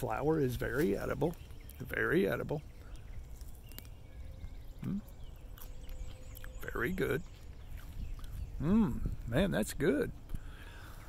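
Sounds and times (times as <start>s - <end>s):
person chewing blossoms: 0.6s - 1.9s, 2.7s - 9.3s.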